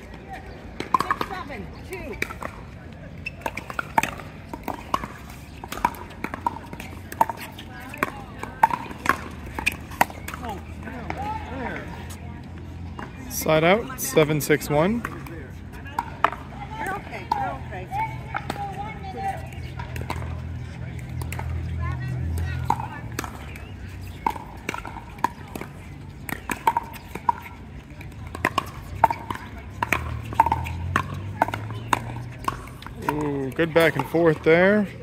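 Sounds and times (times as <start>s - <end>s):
faint voices: 0.0s - 35.0s
paddles hitting plastic ball: 3.3s - 11.2s, 22.3s - 34.5s.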